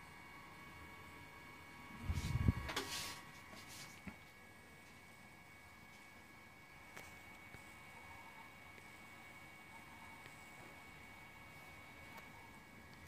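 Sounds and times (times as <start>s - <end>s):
faint steady whine: 0.0s - 13.0s.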